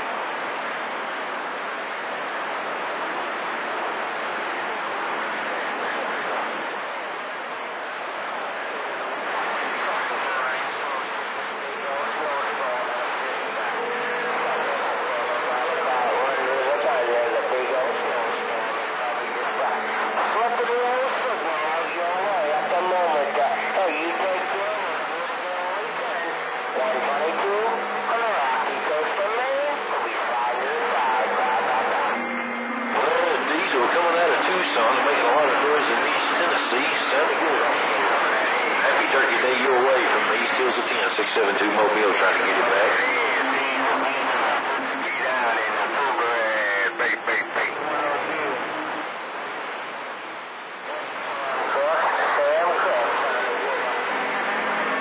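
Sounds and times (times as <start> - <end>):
faint steady radio whistles: 0.0 - 55.0
radio voices through static: 0.0 - 55.0.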